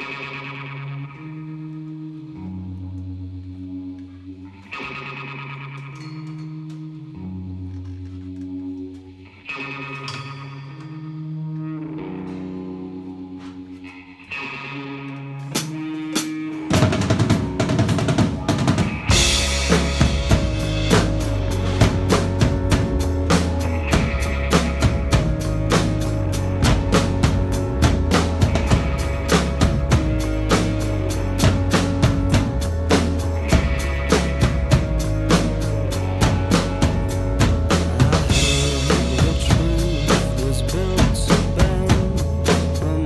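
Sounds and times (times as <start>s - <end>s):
sustained chords and bass: 0.0s - 43.0s
acoustic drum kit: 15.5s - 43.0s.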